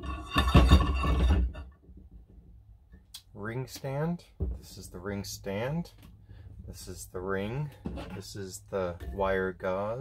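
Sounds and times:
metal clamp scraping and clanking: 0.0s - 1.8s.

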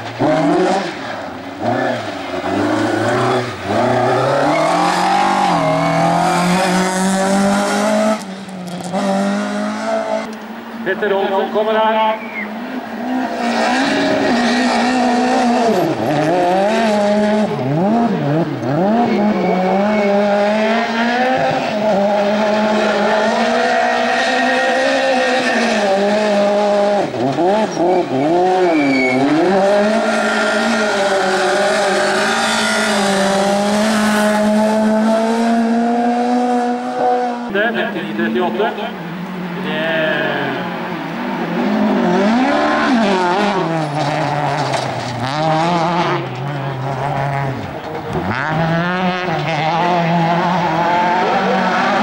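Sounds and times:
car engine revving hard: 0.0s - 10.3s, 13.0s - 38.8s, 39.5s - 52.0s.

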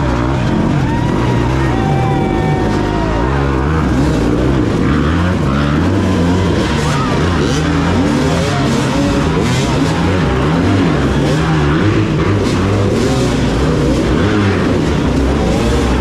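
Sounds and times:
dirt bike engines revving: 0.0s - 16.0s.

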